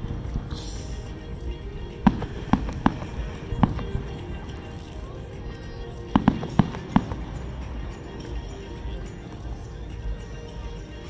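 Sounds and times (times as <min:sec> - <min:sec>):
fireworks bursting with sharp bangs: 0:00.0 - 0:10.2.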